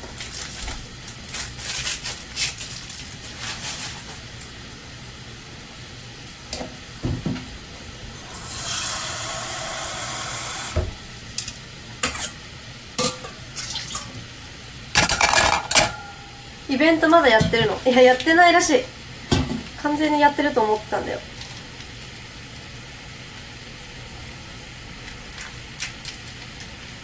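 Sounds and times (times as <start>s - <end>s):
running water: 8.1s - 11.0s
busy kitchen clatter: 8.2s - 14.3s, 14.9s - 21.7s
dishes and utensils clinking: 13.0s - 14.1s, 15.0s - 16.4s.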